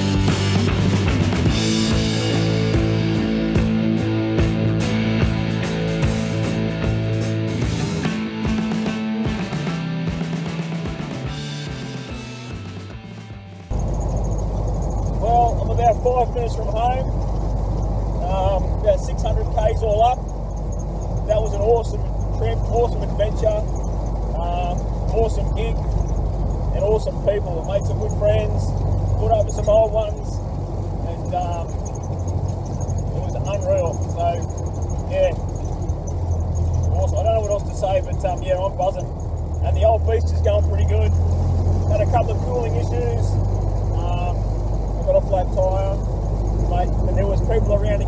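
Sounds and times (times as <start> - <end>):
rock music: 0.0 - 13.7
car engine drone: 0.0 - 48.0
road noise inside car: 10.4 - 48.0
wavering high-pitched sounds: 13.7 - 48.0.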